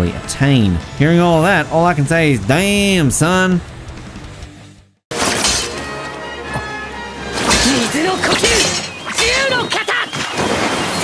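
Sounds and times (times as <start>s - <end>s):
dramatic music: 0.0s - 9.4s
character voice: 7.8s - 10.1s.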